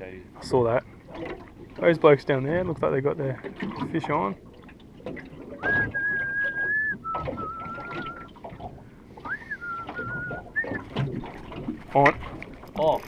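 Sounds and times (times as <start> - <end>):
person whistling a tune: 5.6 - 8.3, 9.2 - 10.8.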